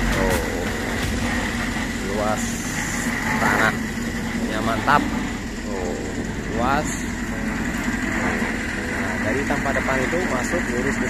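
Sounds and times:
concrete mixer engine chugging: 0:00.0 - 0:11.0.

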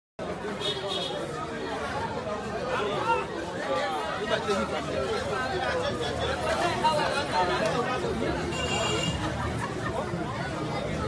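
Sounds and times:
babble of voices: 0:00.2 - 0:11.0.

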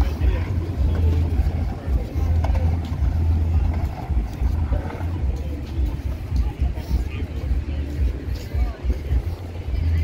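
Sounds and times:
faint voices of passers-by: 0:00.0 - 0:10.0.

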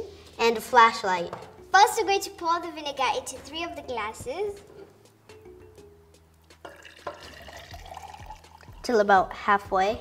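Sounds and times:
background music: 0:00.0 - 0:10.0
liquid pouring into a glass: 0:06.6 - 0:08.9.

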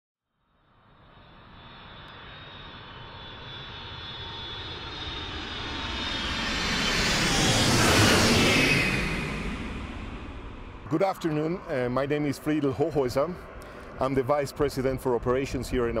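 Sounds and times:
jet engines whining: 0:00.8 - 0:16.0.

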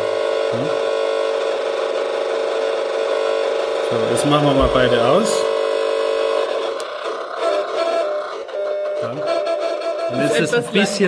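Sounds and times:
electronic buzzing tones: 0:00.0 - 0:11.0.

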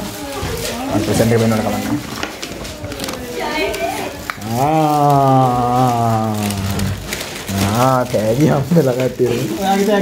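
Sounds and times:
chatter: 0:00.0 - 0:10.0.

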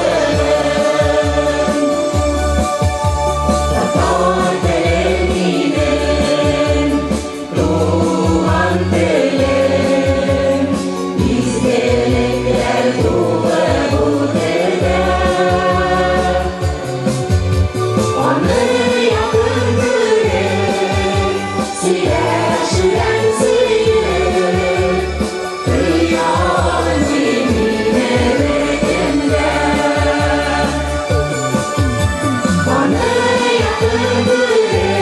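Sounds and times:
mixed choir singing: 0:00.0 - 0:17.3, 0:18.0 - 0:35.0
rhythmic bass accompaniment: 0:00.0 - 0:35.0.

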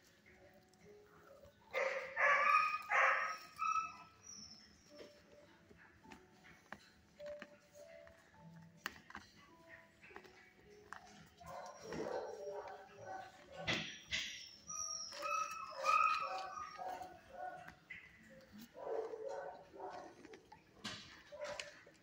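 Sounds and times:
dogs barking: 0:00.0 - 0:08.3, 0:09.4 - 0:22.0
dogs whining: 0:00.0 - 0:22.0.

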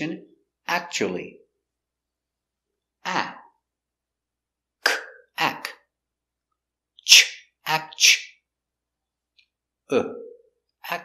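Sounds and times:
man pronouncing speech sounds: 0:00.0 - 0:01.4, 0:03.0 - 0:03.6, 0:04.9 - 0:05.8, 0:09.9 - 0:11.0.

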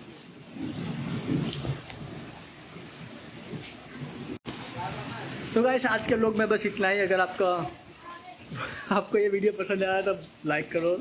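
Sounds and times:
garden hose spraying water: 0:00.0 - 0:11.0.

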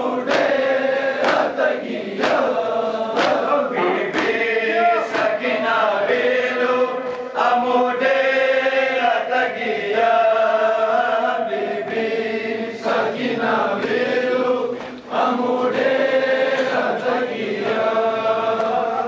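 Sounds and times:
men chanting a lament: 0:00.0 - 0:19.0.

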